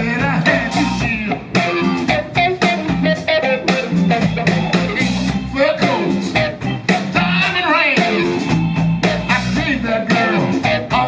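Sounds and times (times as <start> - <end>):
blues band playing: 0.0 - 11.0
electric guitar lines: 0.0 - 11.0
steady drum beat: 0.0 - 11.0.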